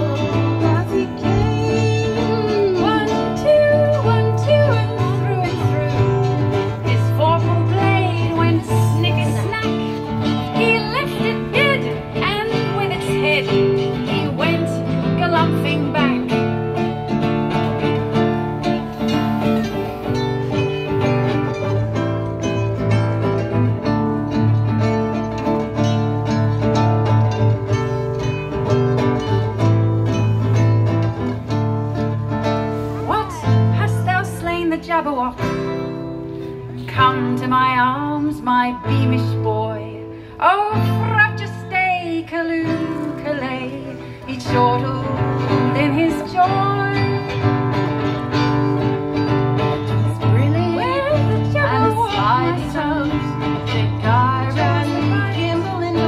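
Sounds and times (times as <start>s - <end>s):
small plucked string instrument: 0.0s - 40.0s, 40.6s - 56.0s
acoustic guitar strumming: 0.0s - 56.0s.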